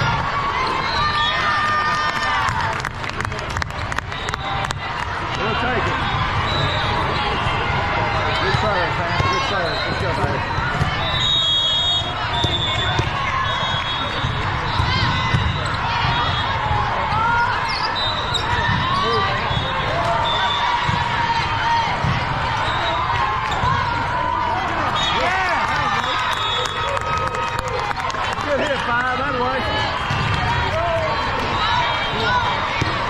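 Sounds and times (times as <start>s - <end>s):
volleyball bouncing and thudding: 12.2s - 17.1s, 20.7s - 22.6s, 30.0s - 30.7s, 32.7s - 33.0s.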